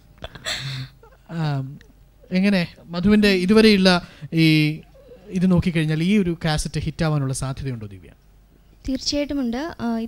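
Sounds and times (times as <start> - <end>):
woman speaking over microphone: 8.9 - 10.0.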